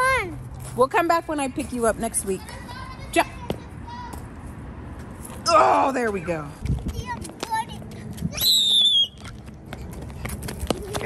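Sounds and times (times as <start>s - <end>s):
child's high-pitched squeal: 8.3s - 9.1s.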